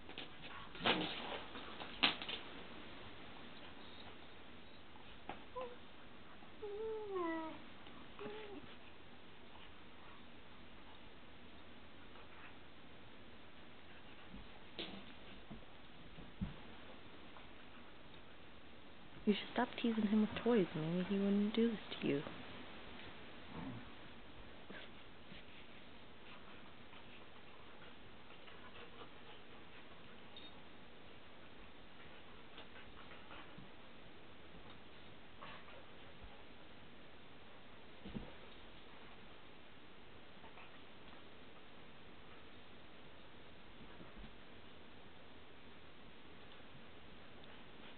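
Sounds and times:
dogs moving on bed and floor: 0:00.0 - 0:04.3
steady background hiss: 0:00.0 - 0:47.9
dog whining: 0:05.5 - 0:05.8, 0:06.6 - 0:07.6, 0:08.2 - 0:08.7.

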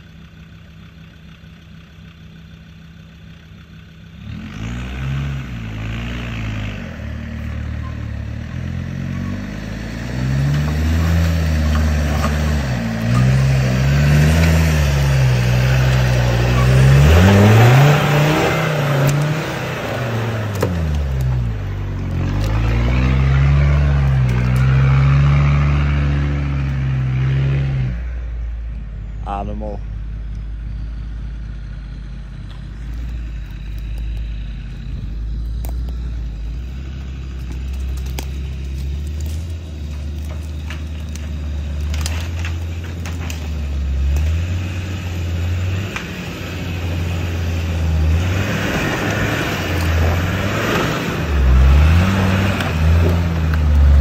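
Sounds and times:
diesel engine revving hard: 0:04.2 - 0:28.7, 0:40.2 - 0:54.0.

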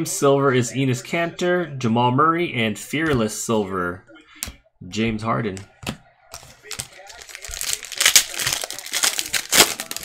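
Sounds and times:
foil wrapper crinkling and tearing: 0:06.4 - 0:10.0.

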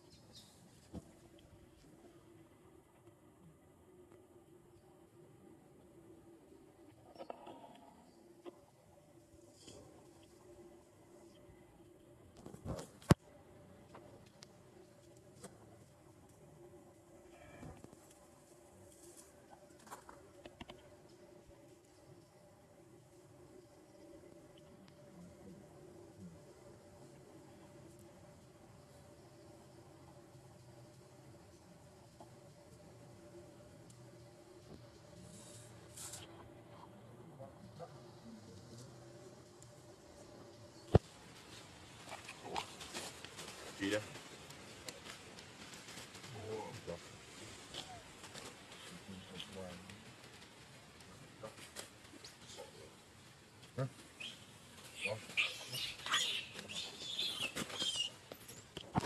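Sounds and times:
monkey low vocal sounds: 0:53.8 - 0:58.2.

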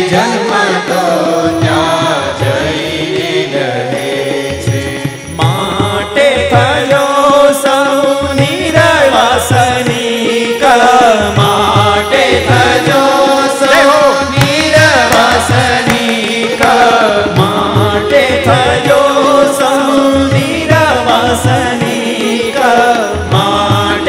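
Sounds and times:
keyboard: 0:00.0 - 0:24.0
person singing chant-like melody: 0:00.0 - 0:24.0
tabla beat: 0:00.0 - 0:24.0.

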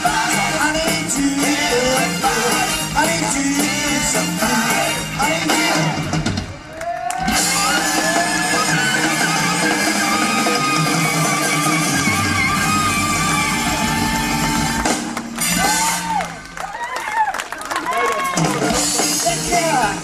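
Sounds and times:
blues-rock band playing: 0:00.0 - 0:06.6, 0:07.3 - 0:16.3, 0:18.2 - 0:20.0.

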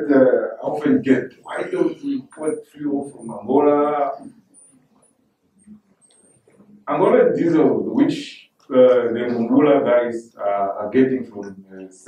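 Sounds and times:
man speaking: 0:00.0 - 0:04.4, 0:06.8 - 0:12.0.

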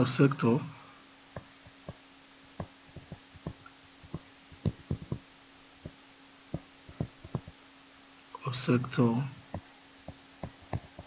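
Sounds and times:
faint steady hum: 0:00.0 - 0:11.0
pen tapping on tablet: 0:01.4 - 0:02.0, 0:02.6 - 0:07.6, 0:09.5 - 0:11.0.

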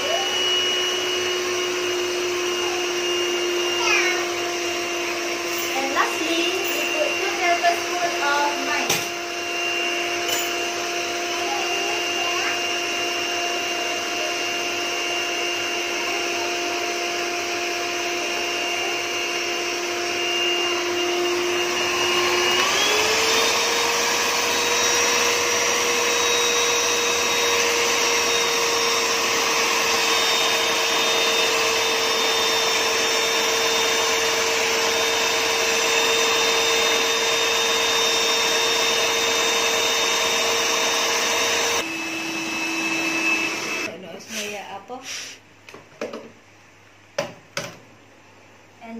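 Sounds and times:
electric hand mixer whining: 0:00.0 - 0:45.4.

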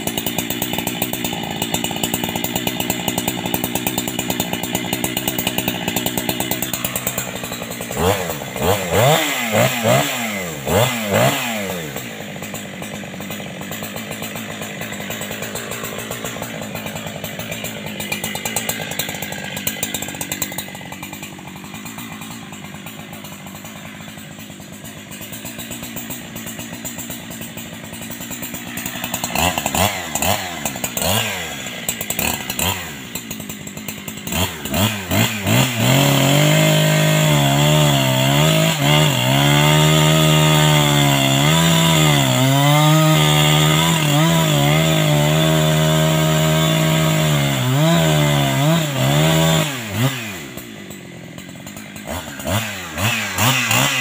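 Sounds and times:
chainsaw idling and revving: 0:00.0 - 0:54.0.

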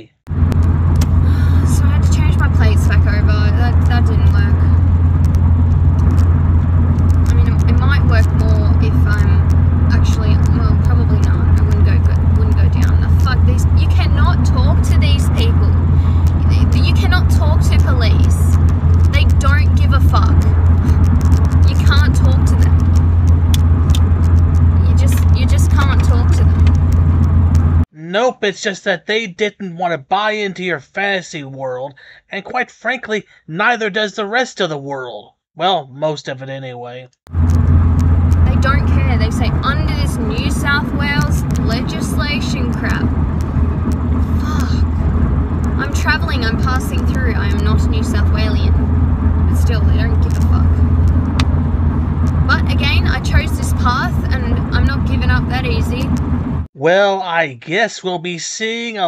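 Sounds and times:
car interior rumble: 0:00.3 - 0:27.9, 0:37.3 - 0:56.7
person talking: 0:01.3 - 0:04.8, 0:07.3 - 0:21.0, 0:21.6 - 0:22.8, 0:24.8 - 0:26.7, 0:28.0 - 0:37.1, 0:38.5 - 0:43.1, 0:44.3 - 0:44.9, 0:45.8 - 0:48.8, 0:49.5 - 0:50.8, 0:52.5 - 0:56.1, 0:56.8 - 0:59.0.

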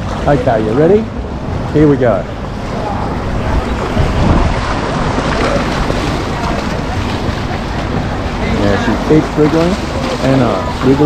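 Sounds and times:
child swimming splashing water: 0:02.6 - 0:11.0.

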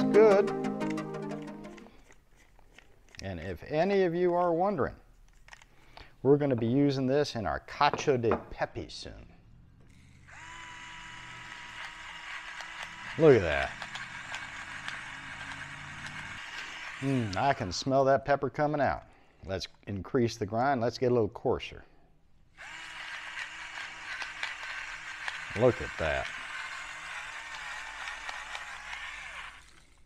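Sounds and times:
peppercorns being ground: 0:01.3 - 0:04.5, 0:09.9 - 0:18.0, 0:22.6 - 0:30.0
electric grinder motor whine: 0:09.8 - 0:17.8, 0:22.6 - 0:30.0.

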